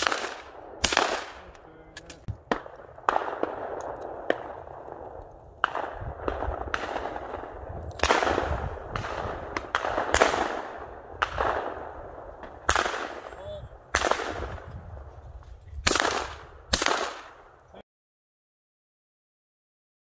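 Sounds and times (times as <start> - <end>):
shotgun shots echoing: 0.0 - 14.7, 15.8 - 17.6.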